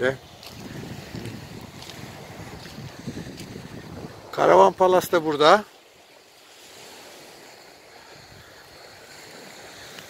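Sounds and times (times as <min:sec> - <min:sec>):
wind buffeting microphone: 0:00.0 - 0:05.3.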